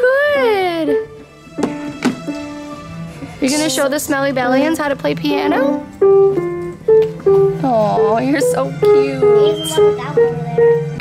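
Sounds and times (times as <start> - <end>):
digital piano notes: 0.0 - 11.0.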